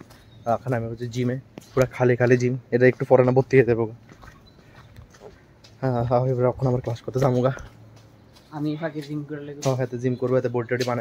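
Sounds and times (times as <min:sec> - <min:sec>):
faint background noise: 0:00.0 - 0:11.0
man speaking: 0:00.4 - 0:04.0, 0:05.8 - 0:07.8, 0:08.9 - 0:11.0.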